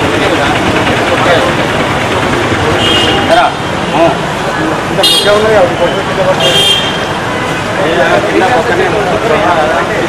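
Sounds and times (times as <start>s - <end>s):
busy street traffic: 0.0s - 10.0s
people talking: 0.0s - 10.0s.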